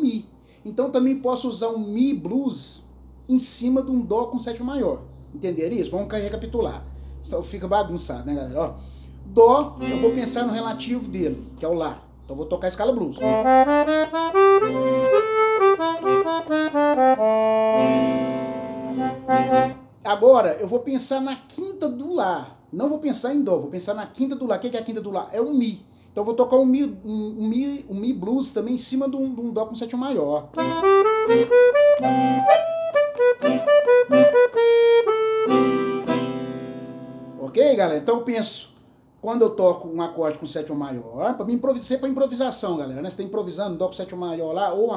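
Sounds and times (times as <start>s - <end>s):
piano accordion playing: 9.4s - 11.8s, 13.1s - 20.0s, 30.5s - 37.6s.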